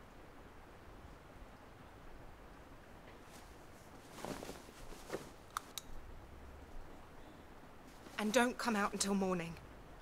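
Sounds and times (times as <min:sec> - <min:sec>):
duvet rustling: 0:03.1 - 0:05.8, 0:07.8 - 0:09.1.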